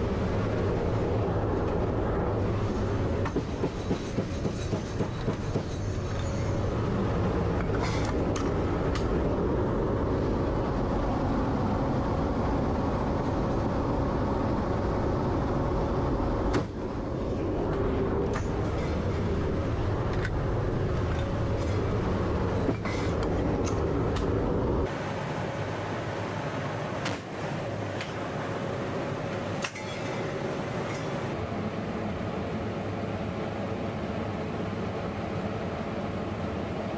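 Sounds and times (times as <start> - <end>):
turboprop engines droning: 0.0 - 36.9.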